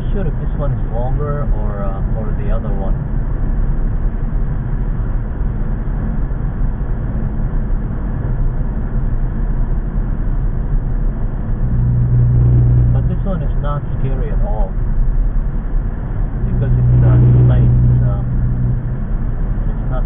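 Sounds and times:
car road and engine noise: 0.0s - 20.0s
loud low hum: 0.0s - 20.0s.

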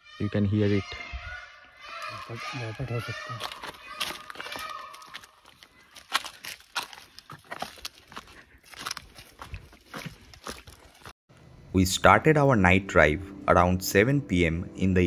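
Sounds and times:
animal alarm call: 0.0s - 5.9s
footsteps on dry leaves and stones: 2.0s - 11.2s.

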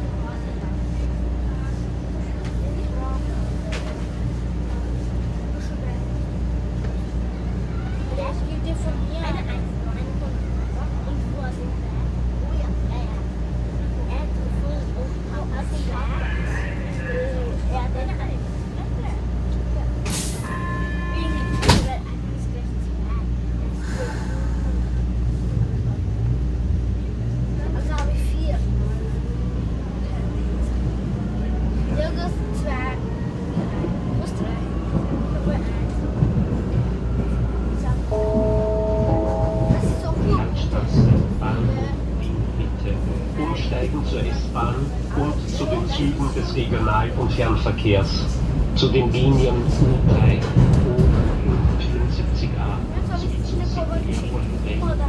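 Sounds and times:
train low hum: 0.0s - 55.0s
voices: 0.0s - 55.0s
train doors shutting thud: 21.5s - 22.0s.

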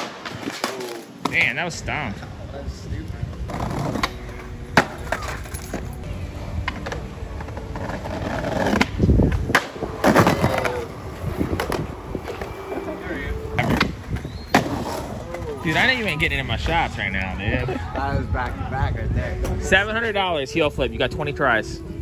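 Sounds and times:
voices chattering: 0.3s - 22.0s
skateboard wheels rolling: 2.2s - 17.5s
skateboard clacking on concrete: 6.6s - 13.0s.

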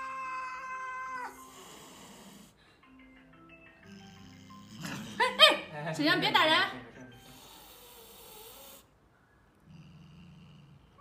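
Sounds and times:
cat yowling: 0.0s - 1.7s
faint xylophone-like music: 1.4s - 7.6s.

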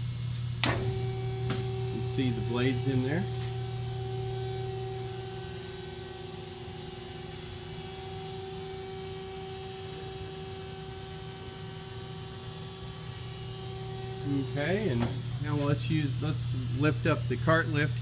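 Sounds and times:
electrical mains hum: 0.0s - 18.0s
high steady tones: 13.2s - 17.4s.

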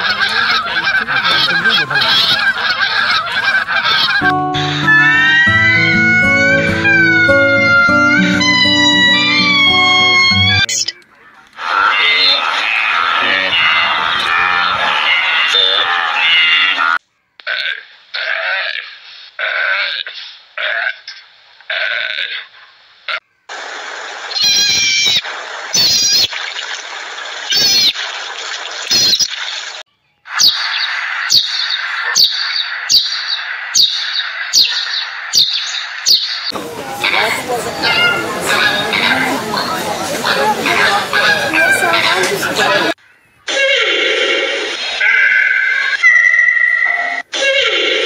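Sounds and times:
wildebeest herd calling: 0.0s - 10.7s, 11.6s - 17.7s, 37.0s - 46.1s
series of short animal calls: 11.6s - 23.4s
marmots calling with sharp clicks: 30.4s - 37.2s.

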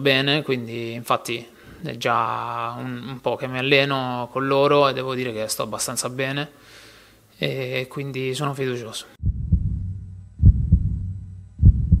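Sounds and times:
heartbeat thumps: 9.2s - 12.0s
low steady hum: 9.2s - 12.0s.

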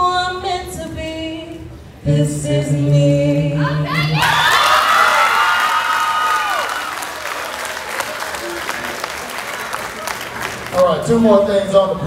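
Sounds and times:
high-pitched cheers: 3.9s - 8.6s
audience applauding: 4.2s - 11.0s.

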